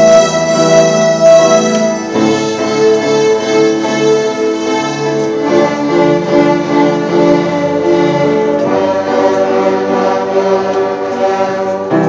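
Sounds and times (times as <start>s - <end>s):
string orchestra sustained chord: 0.0s - 12.0s.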